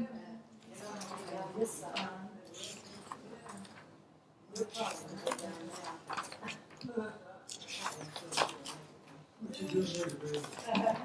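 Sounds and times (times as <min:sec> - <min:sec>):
quiet indistinct talking: 0:00.0 - 0:11.0.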